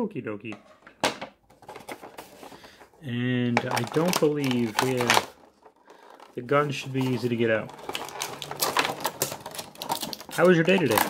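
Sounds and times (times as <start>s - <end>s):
plastic packaging crackling and clicking: 1.5s - 11.0s.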